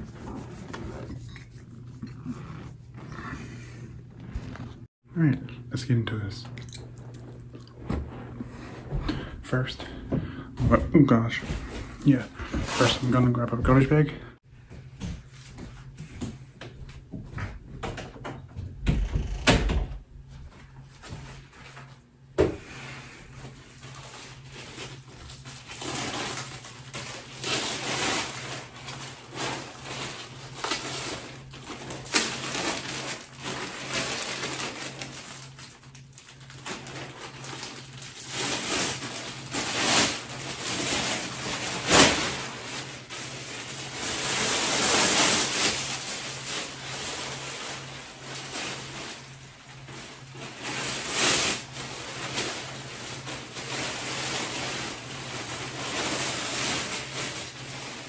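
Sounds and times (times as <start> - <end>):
plastic bag rustling: 0.0 - 4.9, 6.1 - 14.0, 20.3 - 58.0
plastic bag snapping: 25.9 - 43.4.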